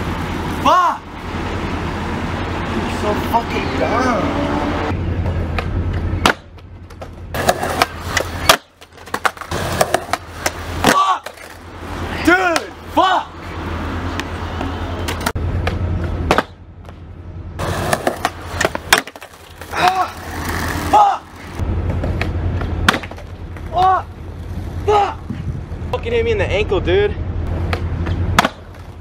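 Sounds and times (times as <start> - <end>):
skateboard wheels rolling on concrete: 0.0 - 29.0
skateboard clacks and deck slaps: 5.5 - 11.6, 15.1 - 17.0, 17.8 - 20.6, 21.9 - 23.8, 27.7 - 29.0.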